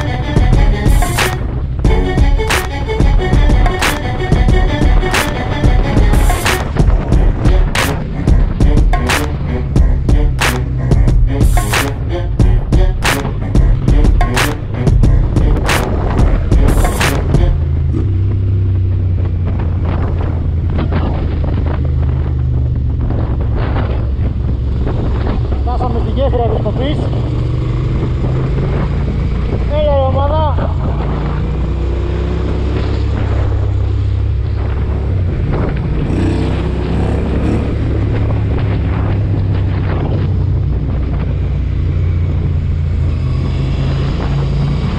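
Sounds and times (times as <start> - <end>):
background music: 0.0 - 18.6
motorcycle engine running: 0.0 - 44.9
wind buffeting microphone: 4.3 - 8.9, 14.6 - 44.9.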